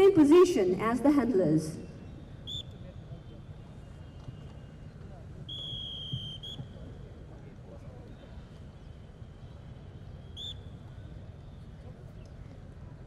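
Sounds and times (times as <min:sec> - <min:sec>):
open-air ground noise: 0:00.0 - 0:13.0
high whistle blasts: 0:02.4 - 0:02.8, 0:05.5 - 0:06.8, 0:10.2 - 0:10.8.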